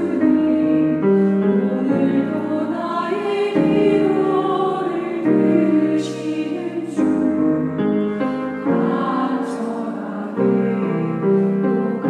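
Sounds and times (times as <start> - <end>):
women's choir singing: 0.0 - 12.0.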